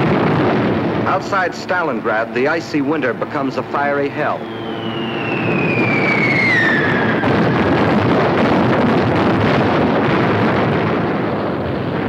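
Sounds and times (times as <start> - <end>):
rumble of explosions: 0.0 - 12.0
whistle of falling bombs: 4.4 - 8.8.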